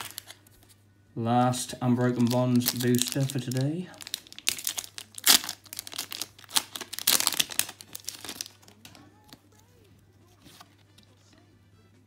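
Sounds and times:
foil wrapper crinkling and tearing: 0:00.0 - 0:00.4, 0:02.0 - 0:09.0.

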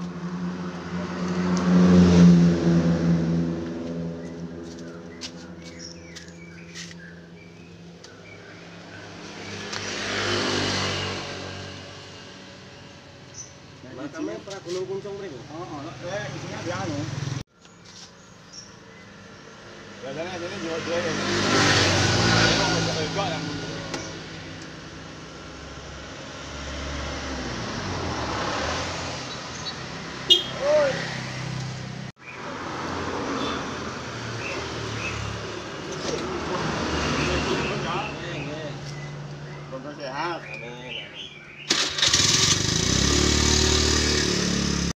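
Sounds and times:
vehicle passing by: 0:00.0 - 0:07.7, 0:08.4 - 0:13.0, 0:13.6 - 0:17.4, 0:19.1 - 0:40.1, 0:41.7 - 0:44.9
road traffic: 0:00.0 - 0:44.9.

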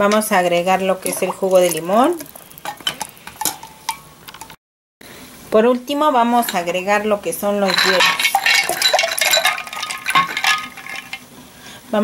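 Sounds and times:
spoon clinking against glass pitcher: 0:07.7 - 0:11.2.

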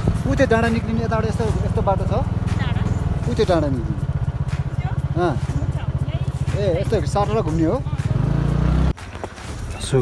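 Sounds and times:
vehicle engine droning: 0:00.0 - 0:10.0.

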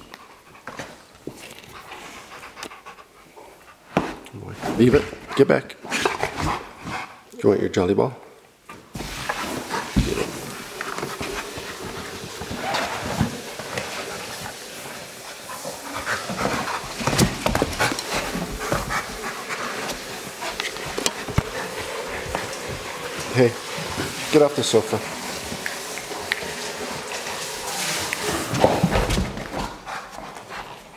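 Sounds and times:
dog panting: 0:00.0 - 0:04.2, 0:09.3 - 0:30.9.

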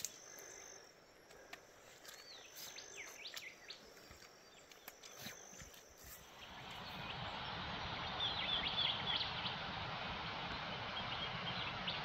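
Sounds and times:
bird chirps: 0:00.0 - 0:09.6
faint steady insect tone: 0:00.0 - 0:09.7.

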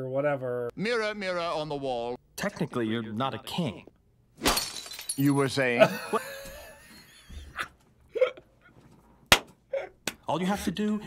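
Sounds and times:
man laughing hard: 0:05.8 - 0:08.5.

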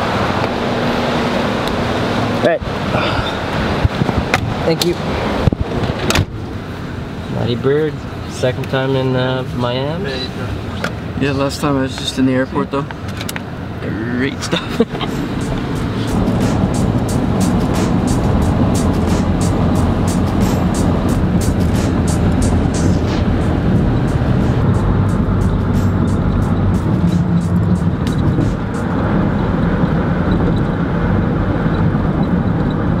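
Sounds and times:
road and engine noise in car: 0:00.0 - 0:33.0.

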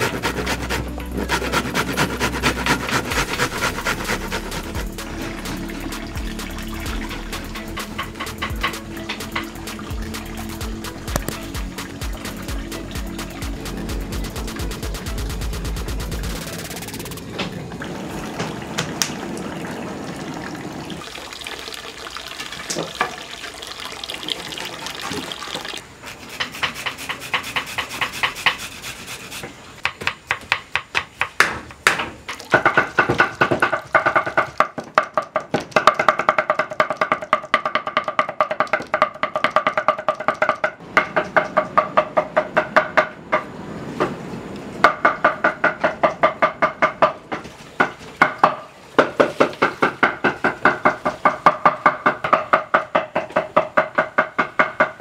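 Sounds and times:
cleavers chopping on wooden board: 0:29.8 - 0:43.5, 0:44.8 - 0:55.0.

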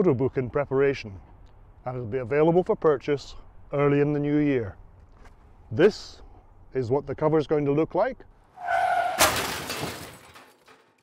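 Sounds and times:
glass shattering crash: 0:09.1 - 0:11.0.

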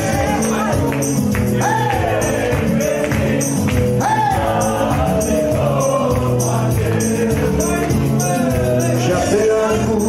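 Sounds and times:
band playing dance tune: 0:00.0 - 0:10.0.

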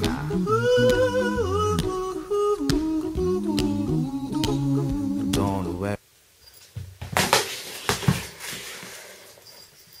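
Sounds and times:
rustling handling noise: 0:06.6 - 0:10.0.

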